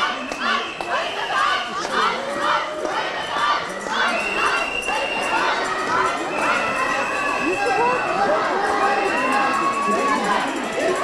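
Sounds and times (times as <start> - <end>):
crowd of women shouting and cheering: 0.0 - 11.0.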